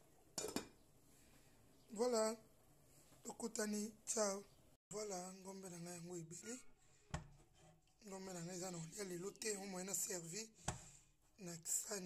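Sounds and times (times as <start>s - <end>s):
person speaking in pitched phrases: 1.9s - 2.4s, 3.2s - 6.7s, 8.0s - 10.5s.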